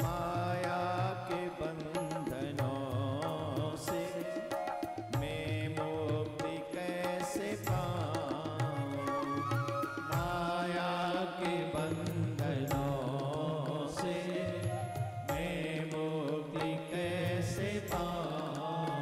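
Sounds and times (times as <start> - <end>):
percussion strokes: 0.0 - 10.8.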